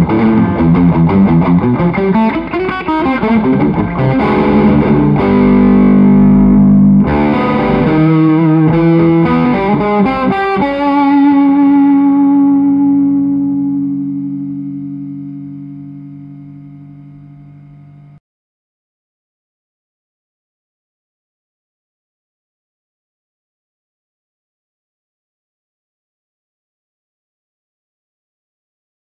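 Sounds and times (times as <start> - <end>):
distorted electric guitar chords: 0.0 - 18.2.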